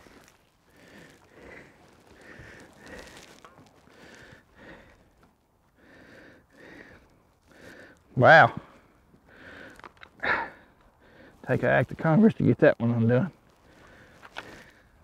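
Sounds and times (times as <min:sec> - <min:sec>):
man breathing through nose: 0:00.0 - 0:11.4, 0:13.6 - 0:15.0.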